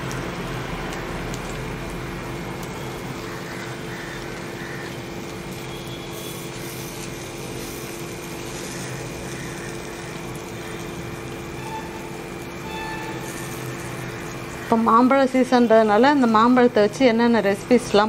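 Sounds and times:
batter sizzling in oil: 0.0s - 18.0s
constant background hum: 0.0s - 18.0s.

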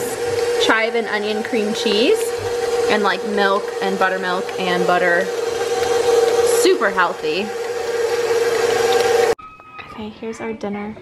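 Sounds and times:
beater mashing potatoes in bowl: 0.0s - 9.4s
stand mixer motor whine: 0.0s - 9.4s.

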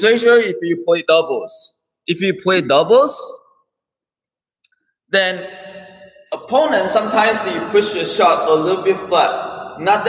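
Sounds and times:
man speaking: 0.0s - 3.5s, 5.1s - 10.0s.

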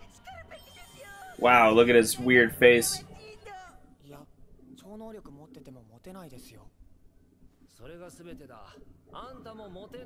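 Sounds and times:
young man speaking: 1.4s - 3.0s.

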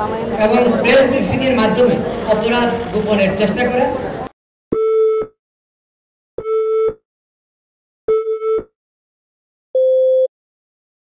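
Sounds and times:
man speaking: 0.4s - 4.0s.

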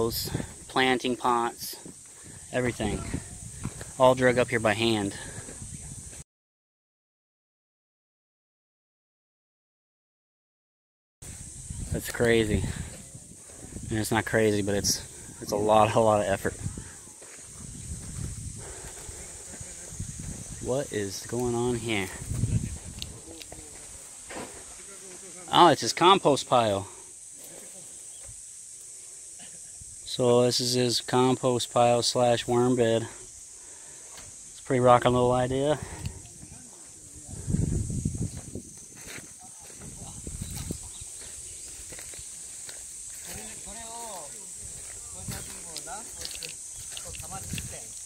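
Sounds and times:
high-pitched outdoor hiss: 0.0s - 6.2s, 11.2s - 48.0s
insects droning: 0.0s - 6.2s, 11.2s - 48.0s
footsteps on dirt path: 1.8s - 4.0s, 11.2s - 25.3s, 35.7s - 48.0s.

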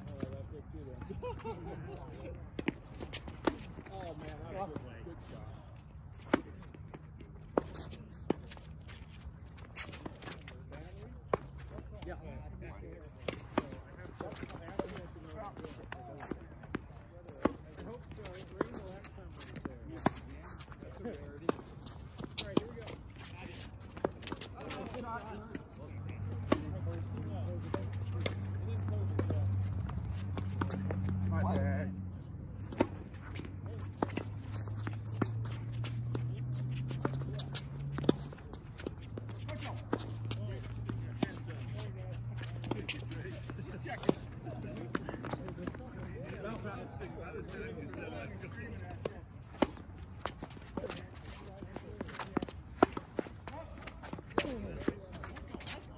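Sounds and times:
tennis balls bouncing on court: 0.0s - 5.0s, 6.1s - 12.2s, 13.0s - 55.9s
faint voices: 0.0s - 55.9s
tennis balls struck by rackets: 2.4s - 4.9s, 21.0s - 31.9s, 32.5s - 46.9s, 47.8s - 55.9s.

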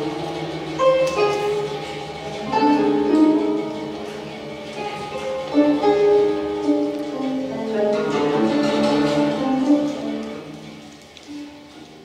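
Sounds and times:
plucked zithers: 0.0s - 12.0s.

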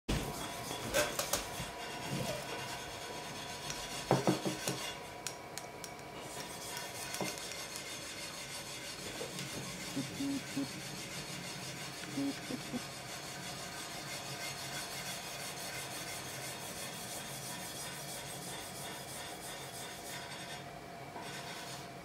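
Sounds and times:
knocks on a workbench: 4.1s - 4.8s.

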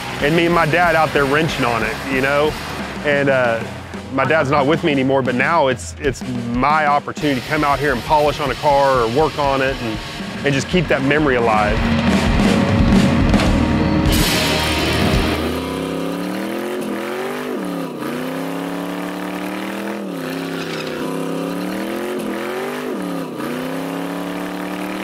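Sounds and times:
music: 0.0s - 16.2s
car engine revving: 0.0s - 25.0s.

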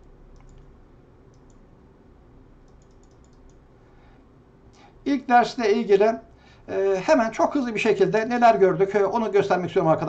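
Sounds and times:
computer clicking: 0.0s - 1.7s, 2.6s - 3.6s.

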